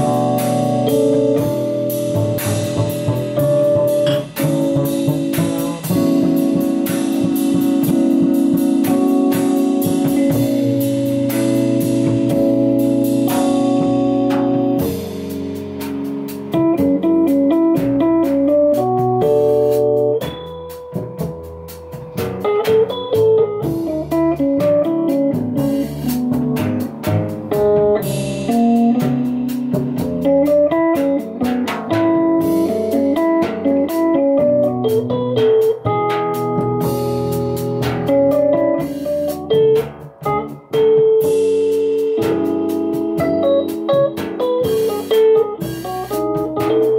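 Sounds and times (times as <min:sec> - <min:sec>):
drum kit on cymbals and drums: 0:00.0 - 0:46.9
electric piano melody: 0:00.0 - 0:46.9
plucked double bass: 0:00.0 - 0:46.9.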